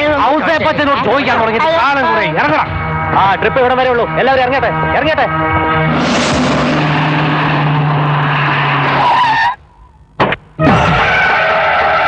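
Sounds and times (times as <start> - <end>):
low hum: 0.5 - 10.6
loud steady rushing noise: 1.4 - 9.2.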